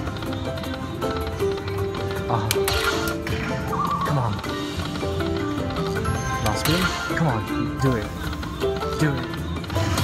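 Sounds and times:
slot machine bonus music: 0.0s - 10.0s.

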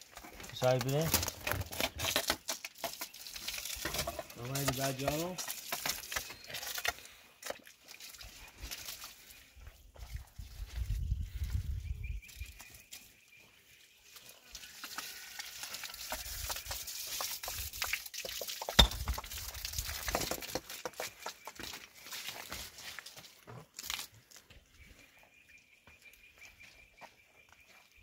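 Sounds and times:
water spraying from hose onto stone: 0.0s - 9.4s, 14.0s - 24.3s.

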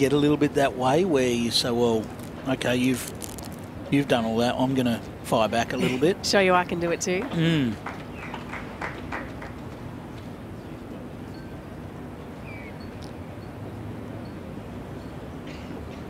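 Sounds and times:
low background hum: 0.0s - 16.0s.

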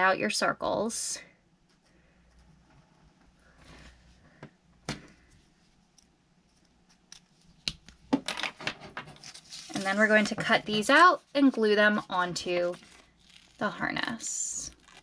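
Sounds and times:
paper rustling: 8.6s - 14.1s.

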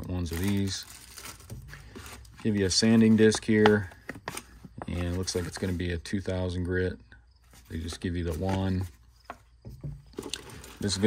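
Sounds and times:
hands handling packaging: 0.0s - 6.0s, 7.4s - 9.5s, 10.1s - 11.0s.

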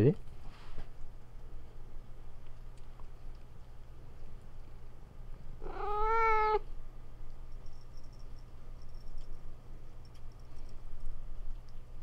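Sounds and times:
cat meowing: 5.6s - 6.7s.

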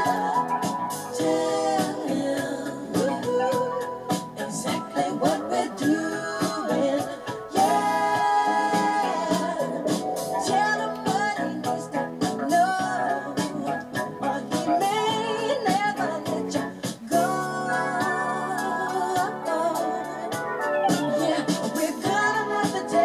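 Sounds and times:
song with singing voice: 0.0s - 23.0s.

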